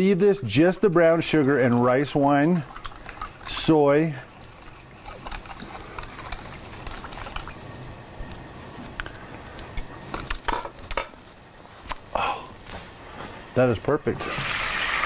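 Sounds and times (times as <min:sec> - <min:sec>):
pan hissing: 0:14.2 - 0:15.0.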